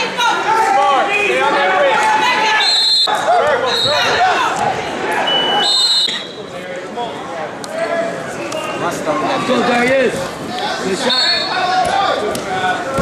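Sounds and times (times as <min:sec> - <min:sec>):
spectators and coaches shouting: 0:00.0 - 0:06.5, 0:07.7 - 0:13.0.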